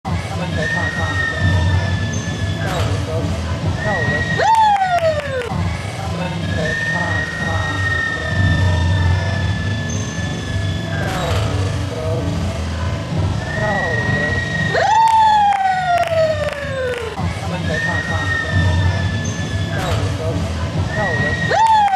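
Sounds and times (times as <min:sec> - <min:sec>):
background music: 0:00.0 - 0:21.9
voices: 0:00.1 - 0:21.9.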